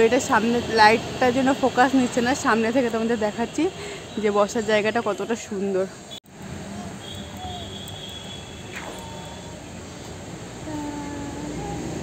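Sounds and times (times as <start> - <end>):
faint distant traffic: 0.0 - 12.0.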